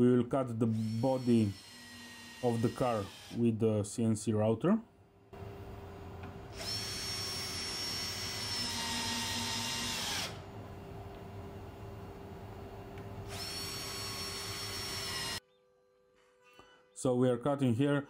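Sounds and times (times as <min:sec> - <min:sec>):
drill motor whining: 0:00.7 - 0:03.4, 0:06.5 - 0:10.4, 0:13.3 - 0:15.4.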